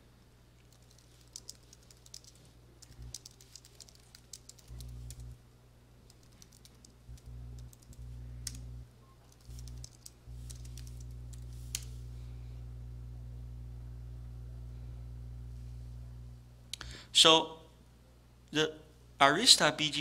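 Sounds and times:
low steady hum: 0:00.0 - 0:20.0
computer keyboard key clicks: 0:00.7 - 0:05.3, 0:06.1 - 0:08.6, 0:09.3 - 0:11.9.

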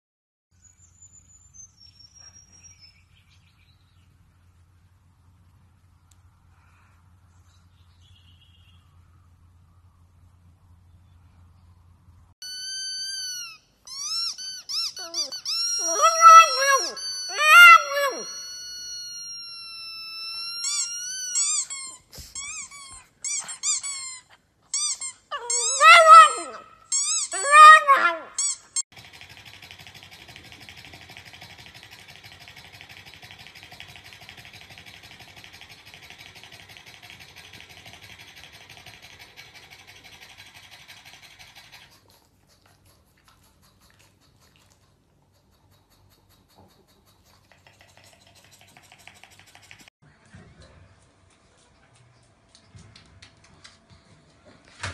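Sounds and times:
dog whining and yowling: 0:12.4 - 0:28.8.

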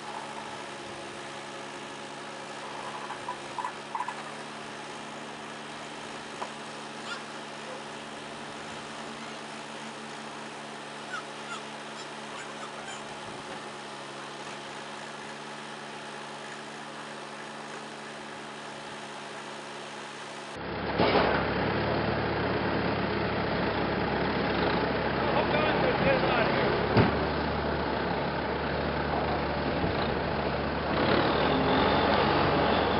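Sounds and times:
loader engine running: 0:00.0 - 0:32.9.

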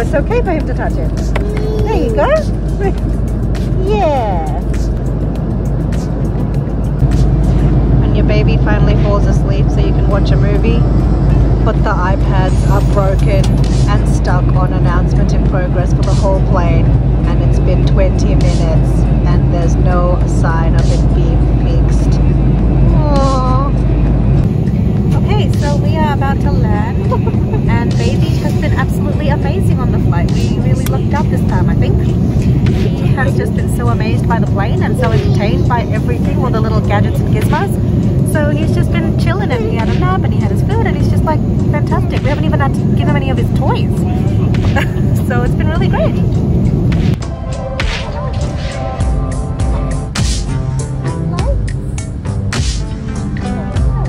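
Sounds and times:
voices: 0:00.0 - 0:05.0, 0:08.0 - 0:46.5
airliner cabin drone: 0:00.0 - 0:54.0.

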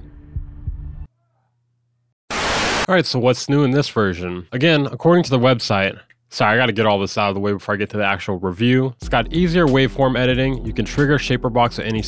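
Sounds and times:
dull heartbeat-like thumps: 0:00.3 - 0:01.0.

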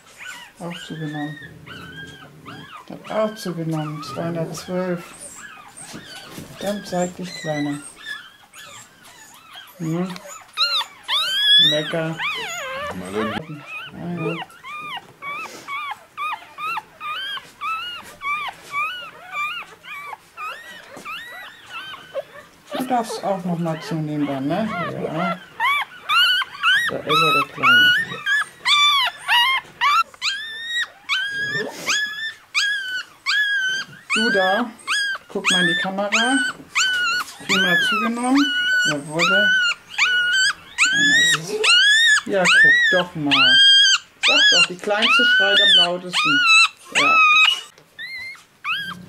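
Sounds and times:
puppy squealing: 0:00.0 - 0:49.0.

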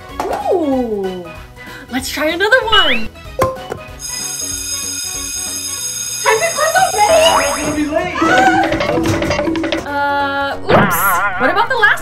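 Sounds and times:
background music: 0:00.0 - 0:12.0
electric school bell ringing: 0:04.0 - 0:08.1.

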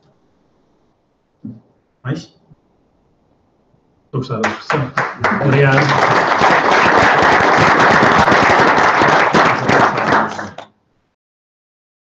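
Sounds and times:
audience applauding: 0:04.4 - 0:10.7.

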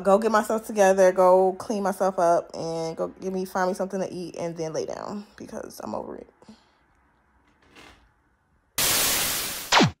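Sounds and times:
falling electronic sweep: 0:08.8 - 0:10.0
tv static hiss: 0:08.8 - 0:10.0.

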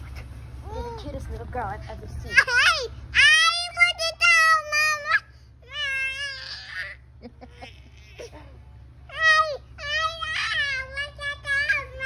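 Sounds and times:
toddler girl crying: 0:02.4 - 0:12.0.

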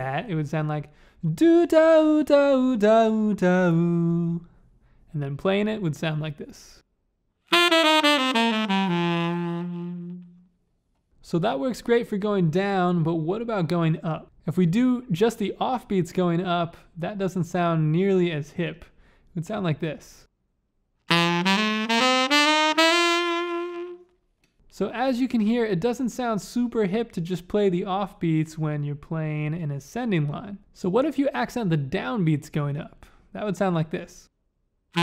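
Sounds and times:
saxophone playing descending scale: 0:07.5 - 0:10.5, 0:21.1 - 0:24.1.

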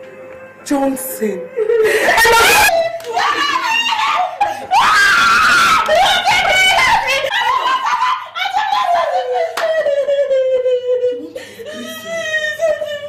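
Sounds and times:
woman screaming and wailing: 0:01.5 - 0:13.0.

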